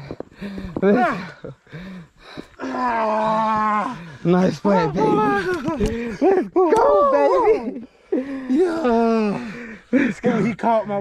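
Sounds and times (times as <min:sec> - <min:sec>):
man shouting excitedly: 0:04.3 - 0:05.5.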